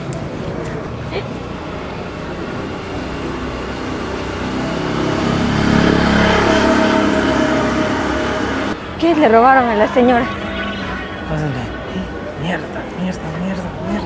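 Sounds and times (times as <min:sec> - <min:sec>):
road traffic: 0:00.0 - 0:14.0
car passing close by: 0:02.8 - 0:09.3.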